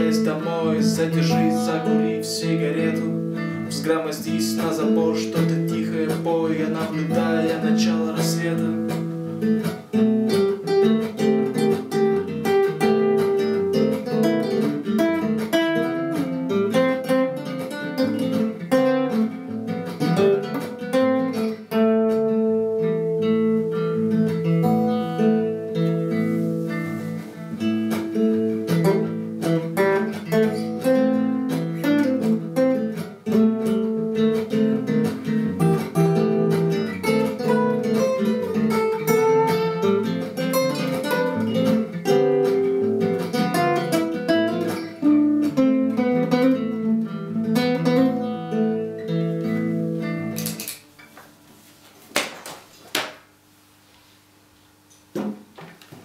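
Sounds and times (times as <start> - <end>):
acoustic guitar melody: 0.0 - 52.8
looped guitar part: 0.0 - 53.2.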